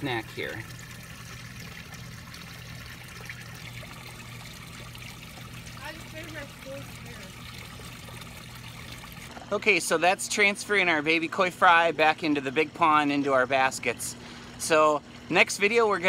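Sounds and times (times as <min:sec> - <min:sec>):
low steady hum: 0:00.0 - 0:16.0
pond water trickling: 0:00.0 - 0:16.0.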